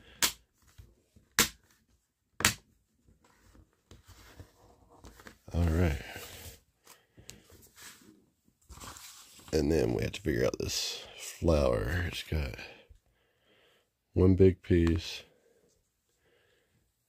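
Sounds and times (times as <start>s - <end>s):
paper booklet rustling: 3.1s - 10.2s.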